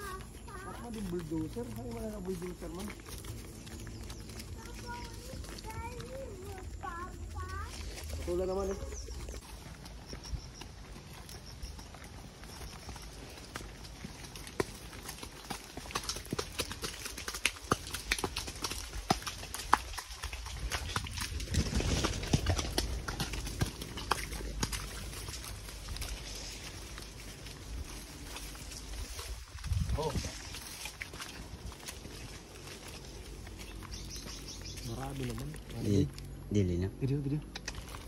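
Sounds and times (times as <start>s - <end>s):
horse hooves on dirt: 0.0s - 38.0s
low steady rumble: 0.0s - 38.0s.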